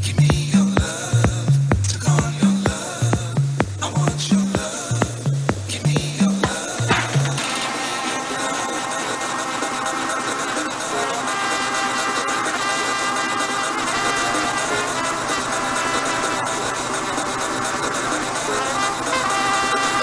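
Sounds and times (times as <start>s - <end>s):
dj mix music with melodic layers: 0.0s - 20.0s.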